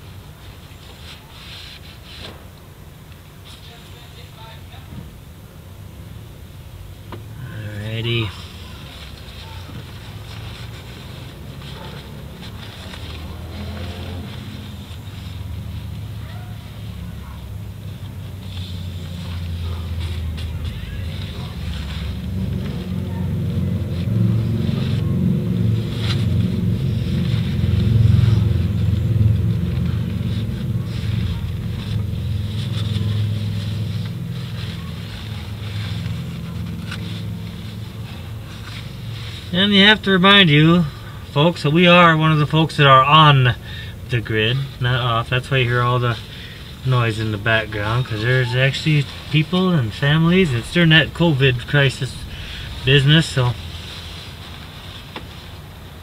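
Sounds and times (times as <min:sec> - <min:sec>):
engine low hum: 0:00.0 - 0:56.0
paper towel rustling and clicks: 0:07.6 - 0:56.0.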